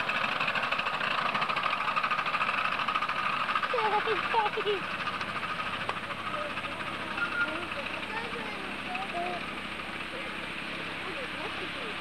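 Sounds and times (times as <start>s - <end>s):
distant people chatting: 5.8s - 12.0s.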